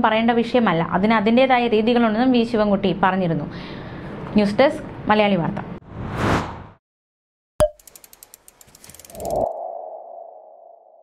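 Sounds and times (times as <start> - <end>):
quick run of ticks: 7.8 - 9.5.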